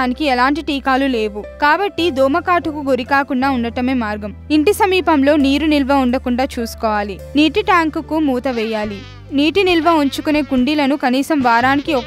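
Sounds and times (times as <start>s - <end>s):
soft background music: 0.0s - 12.0s
woman narrating: 0.0s - 12.0s
mosquito buzzing: 8.4s - 12.0s.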